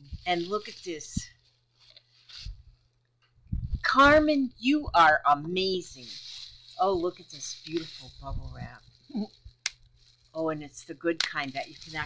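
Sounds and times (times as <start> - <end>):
woman's voice: 0.0 - 1.3, 3.8 - 6.2, 6.8 - 8.8, 10.4 - 12.0
plastic packing rustling: 0.0 - 3.0, 5.5 - 12.0.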